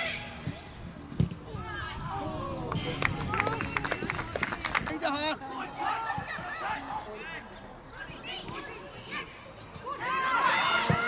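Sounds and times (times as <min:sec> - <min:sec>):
footballers shouting: 0:05.0 - 0:11.0.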